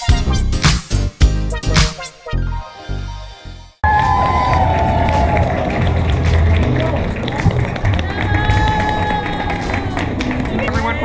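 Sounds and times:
background music with a beat: 0.0 - 4.3
crowd talking: 3.8 - 11.0.

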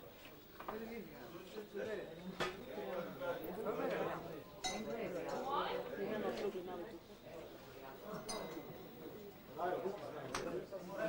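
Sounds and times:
sharp ringing clink: 8.2 - 9.0.

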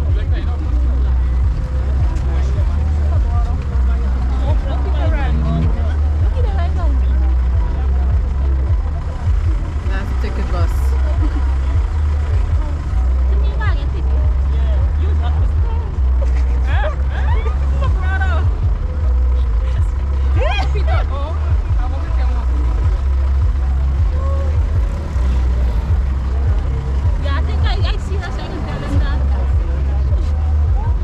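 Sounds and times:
crowd chatter: 0.0 - 31.0
low rumble: 0.0 - 31.0.

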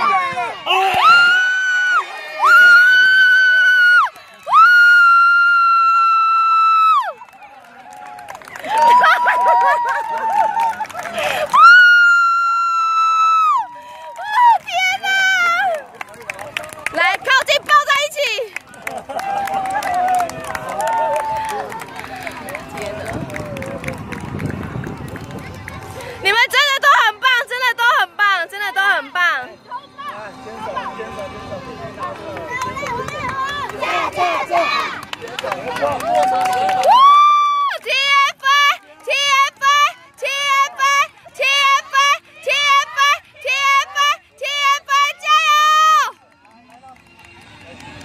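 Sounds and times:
children shouting and chattering: 0.0 - 1.0, 24.4 - 36.0, 37.8 - 46.2
high-pitched scream of joy: 11.5 - 14.6, 36.7 - 37.8.

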